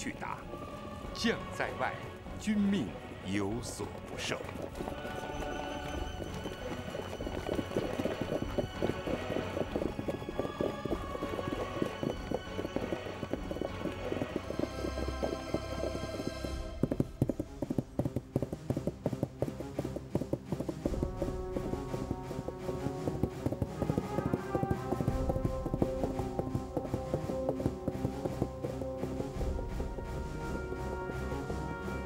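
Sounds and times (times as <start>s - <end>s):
dramatic soundtrack music: 0.0s - 32.0s
horses hoofbeats: 0.0s - 32.0s.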